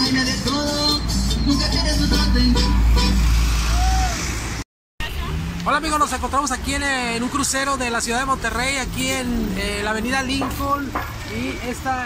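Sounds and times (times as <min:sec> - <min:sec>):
road traffic: 0:00.0 - 0:12.0
truck driving past: 0:01.0 - 0:06.2.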